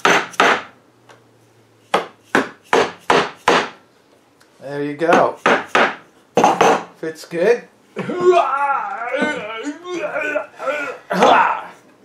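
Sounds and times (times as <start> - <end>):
rubber mallet knocking wood: 1.9 - 3.8, 5.1 - 6.9.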